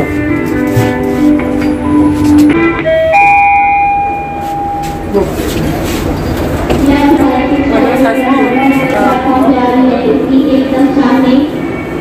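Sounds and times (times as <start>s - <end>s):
railway station hubbub: 0.0s - 12.0s
lift arrival chime: 1.4s - 5.4s, 6.1s - 12.0s.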